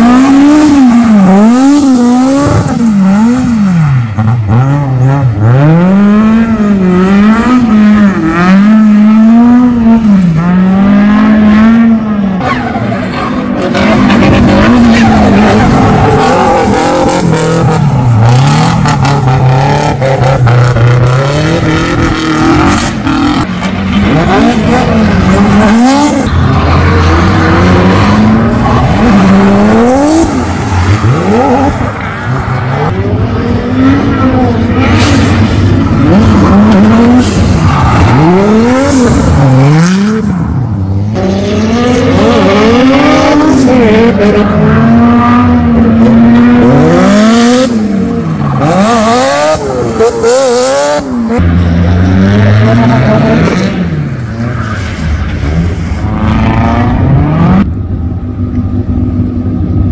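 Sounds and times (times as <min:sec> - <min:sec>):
car engines revving: 0:00.0 - 0:59.9
tyres squealing and skidding: 0:12.2 - 0:20.4, 0:21.4 - 0:40.6.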